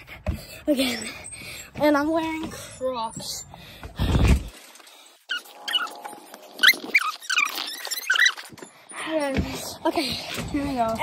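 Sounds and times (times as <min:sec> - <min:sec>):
animal whining squeaks: 0:05.3 - 0:09.3.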